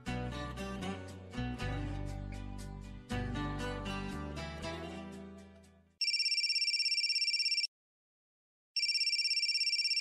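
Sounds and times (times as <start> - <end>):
telephone ringing: 6.0 - 7.7, 8.8 - 10.0.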